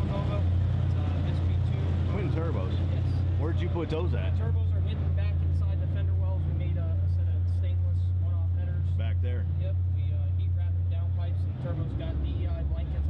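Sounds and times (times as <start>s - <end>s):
loud low hum: 0.0s - 13.0s
voices talking: 0.0s - 13.0s.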